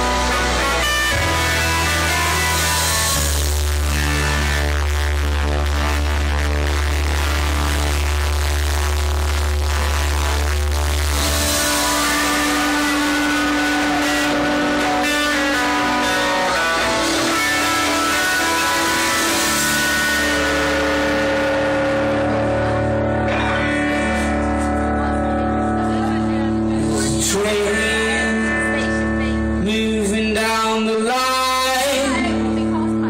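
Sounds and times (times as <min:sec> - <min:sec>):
deep held bass note: 0:00.0 - 0:33.0
live rock band playing: 0:00.0 - 0:33.0.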